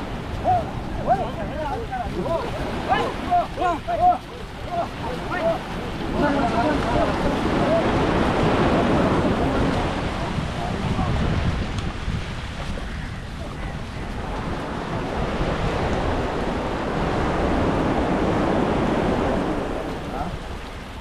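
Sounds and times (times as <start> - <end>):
sea surf washing on shore: 0.0 - 21.0
wind buffeting microphone: 0.0 - 21.0.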